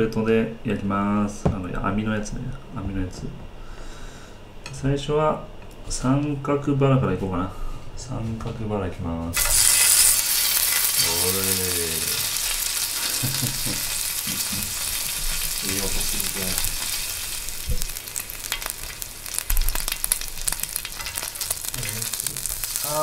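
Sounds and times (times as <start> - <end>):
meat sizzling on grill plate: 9.4 - 23.0.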